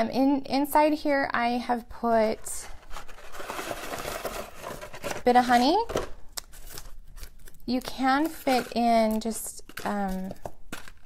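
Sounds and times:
plastic candy wrappers crinkling: 2.8s - 11.0s.

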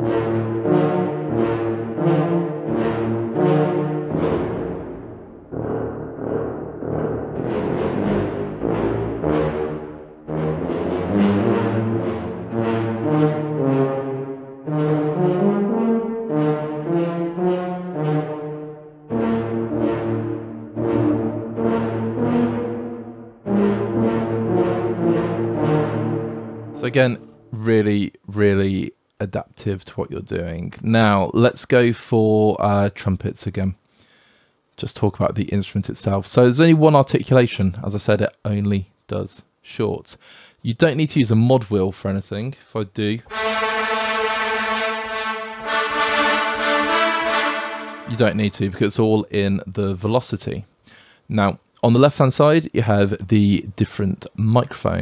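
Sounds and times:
tuba playing short notes: 0.0s - 27.8s, 43.2s - 48.8s.

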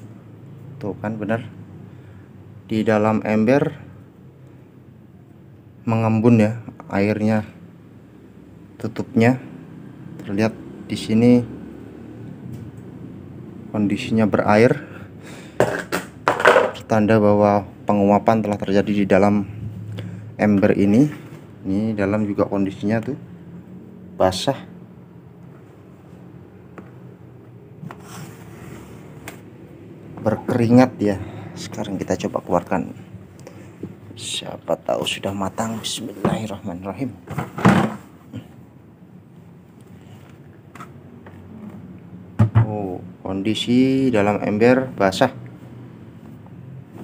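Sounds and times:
man talking: 0.8s - 1.6s, 2.7s - 3.9s, 5.8s - 7.6s, 8.8s - 9.5s, 10.2s - 11.6s, 13.7s - 15.0s, 16.7s - 19.7s, 20.4s - 23.2s, 24.2s - 24.8s, 30.2s - 33.1s, 34.1s - 37.3s, 42.6s - 45.4s.

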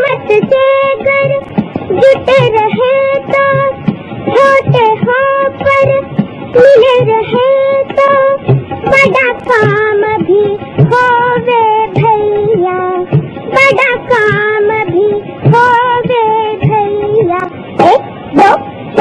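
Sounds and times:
child singing: 0.0s - 18.0s.

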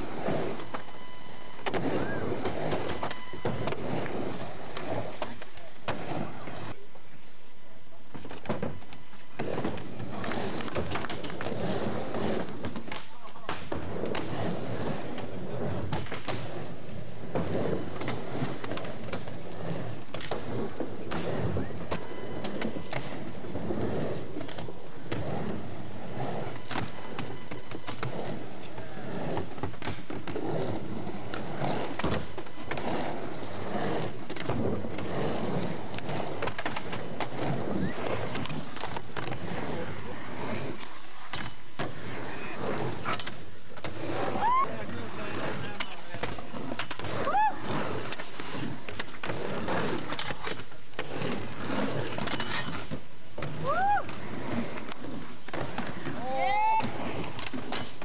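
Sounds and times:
skateboards popping and landing: 0.0s - 58.0s
skateboards rolling on concrete: 0.0s - 58.0s.

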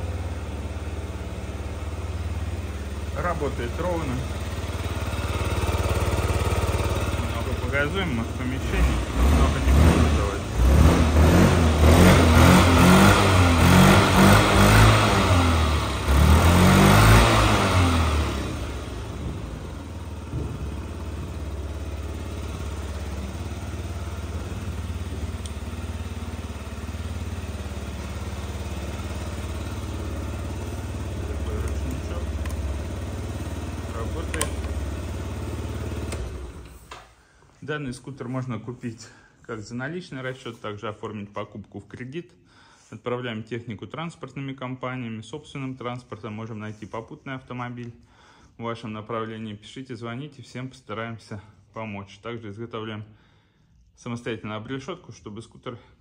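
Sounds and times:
scooter engine revving and idling: 0.0s - 37.0s.

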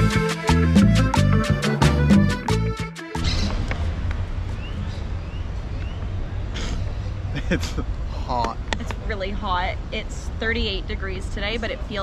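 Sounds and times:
low rumble: 3.2s - 5.7s.

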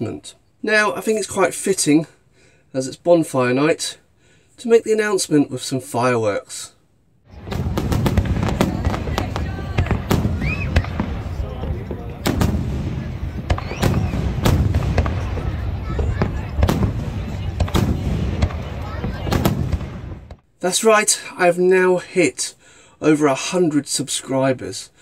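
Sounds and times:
firework shells bursting: 7.3s - 20.4s.

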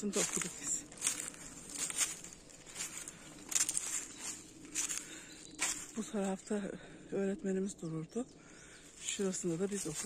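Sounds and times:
footsteps crunching on dry leaves: 0.0s - 6.5s, 8.8s - 10.0s.

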